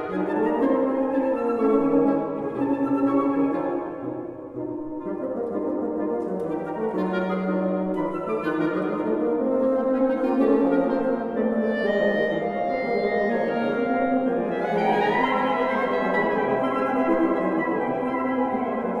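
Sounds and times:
woodwind chamber music: 0:00.0 - 0:19.0.

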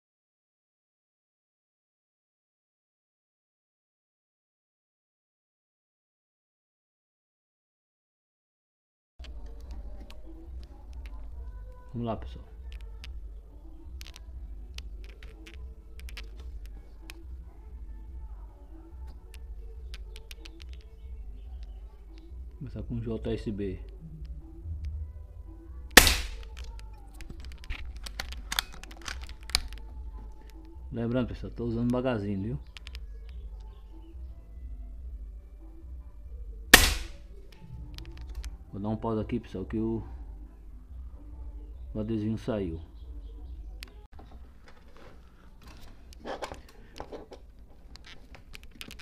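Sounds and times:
faint clicks: 0:12.6 - 0:17.3, 0:19.0 - 0:22.6, 0:32.6 - 0:33.8
steady low hum: 0:23.6 - 0:27.1
air rifle shot: 0:25.9 - 0:26.5, 0:36.8 - 0:37.2
light clicks and rustles: 0:26.4 - 0:30.8.

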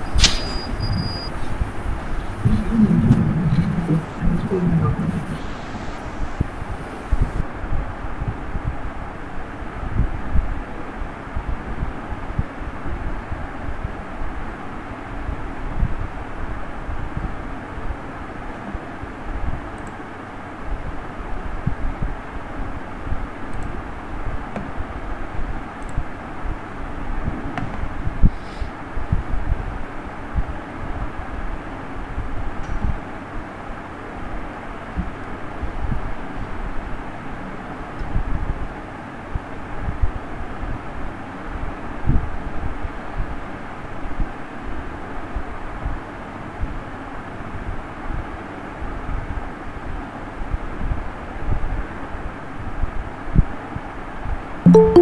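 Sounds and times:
background rumble and hiss: 0:00.0 - 0:36.6.

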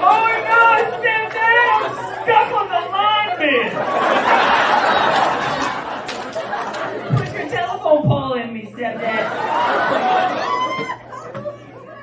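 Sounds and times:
man talking into a microphone: 0:00.0 - 0:03.9, 0:07.1 - 0:09.3
audience chatter: 0:08.9 - 0:12.0.

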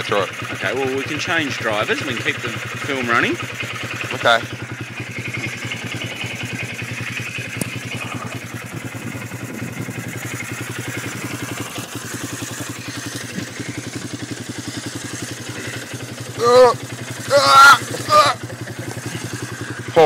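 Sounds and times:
quad bike engine idling: 0:00.0 - 0:20.0.

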